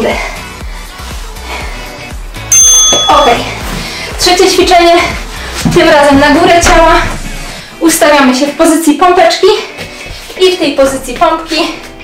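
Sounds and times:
background music with steady beat: 0.0s - 12.0s
interval timer ringing chime: 2.5s - 3.4s.

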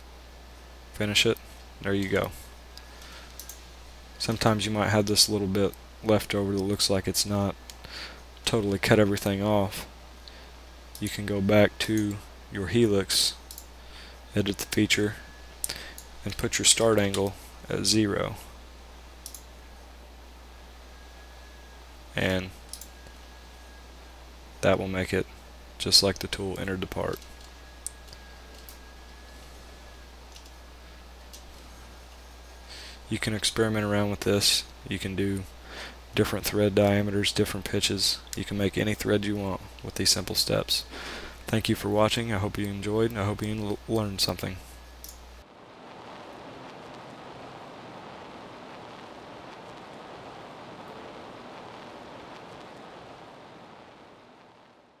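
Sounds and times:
faint high whine: 0.0s - 55.0s
low electrical hum: 0.0s - 55.0s
steady background hiss: 0.0s - 55.0s
computer mouse clicks: 2.8s - 3.6s, 13.5s - 13.7s, 19.2s - 19.5s, 22.7s - 22.9s.

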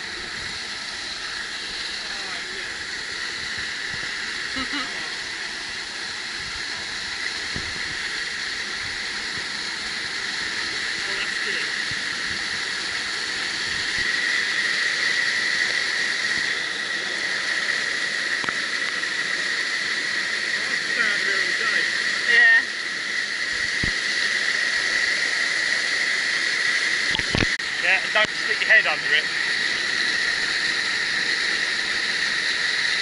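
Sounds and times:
rush of falling water: 0.0s - 33.0s.

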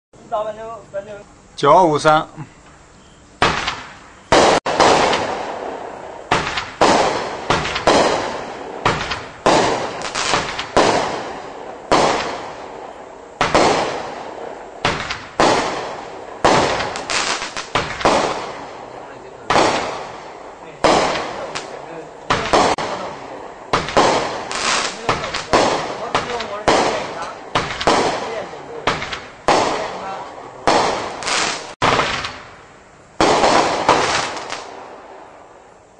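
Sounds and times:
firework cake bangs: 3.4s - 12.8s, 13.4s - 32.5s, 33.2s - 34.7s.

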